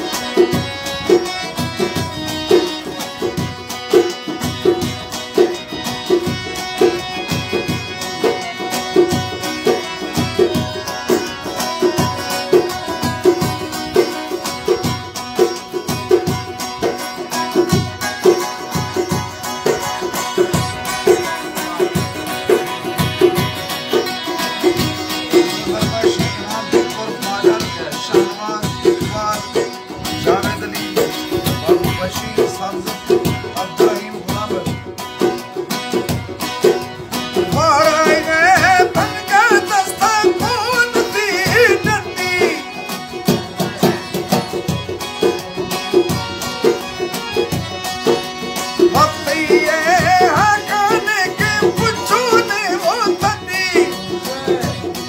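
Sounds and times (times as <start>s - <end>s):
folk music on plucked strings: 0.0s - 55.0s
steady rhythmic pulse: 0.0s - 55.0s.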